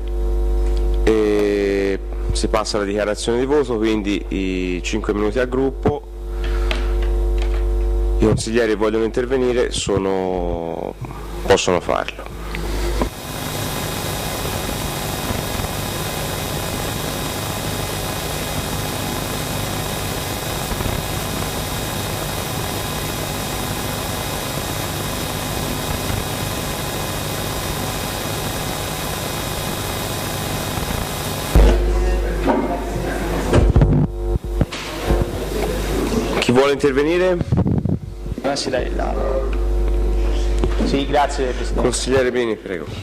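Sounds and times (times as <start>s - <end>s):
electronic hiss: 10.8s - 37.9s
person speaking: 31.6s - 33.6s.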